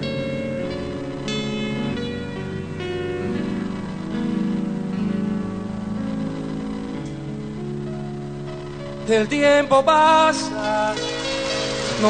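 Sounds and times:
guitar ballad introduction: 0.0s - 12.0s.

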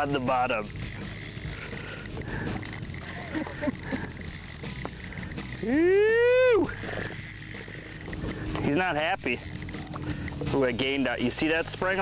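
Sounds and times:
fishing reel whirring and clicking: 0.0s - 12.0s.

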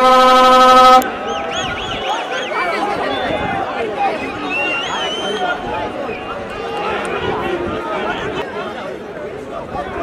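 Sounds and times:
men's voices chattering: 0.8s - 10.0s.

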